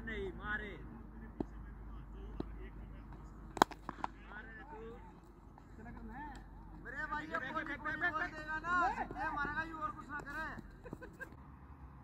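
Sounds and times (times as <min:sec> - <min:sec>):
cricket bat hitting tennis ball: 0:02.3 - 0:11.4.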